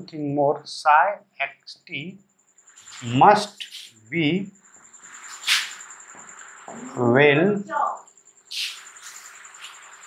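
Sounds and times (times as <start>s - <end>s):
cricket trilling: 0.0s - 10.0s
marker scratching on whiteboard: 2.8s - 4.0s, 5.0s - 6.5s, 8.5s - 10.0s.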